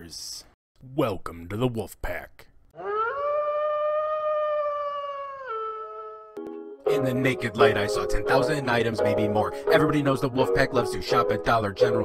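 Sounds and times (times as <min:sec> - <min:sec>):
wolf howling: 0:02.8 - 0:06.4.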